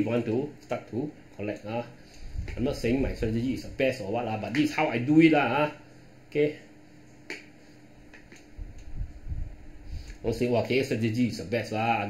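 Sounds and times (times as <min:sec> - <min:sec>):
low rumbling: 0:08.6 - 0:10.4.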